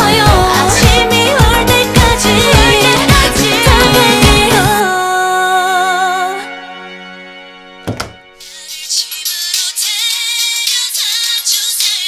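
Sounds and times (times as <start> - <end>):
pop music: 0.0 - 7.0, 7.8 - 12.0
door closing thunk: 7.8 - 8.2.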